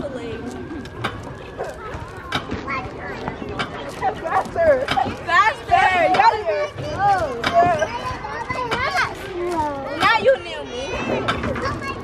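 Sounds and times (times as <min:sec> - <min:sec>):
children's voices and calls: 0:00.0 - 0:12.0.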